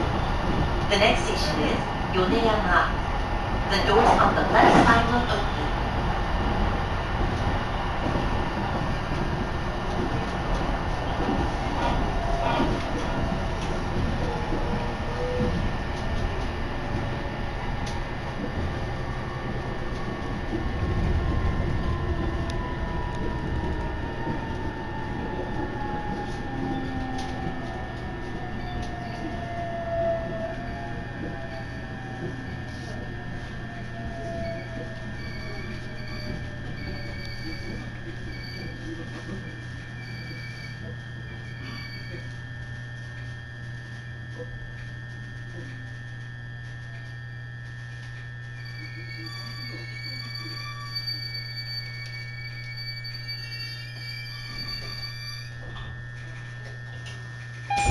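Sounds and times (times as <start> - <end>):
train motor whine: 0.0 - 57.9
train track noise and hum: 0.0 - 57.9.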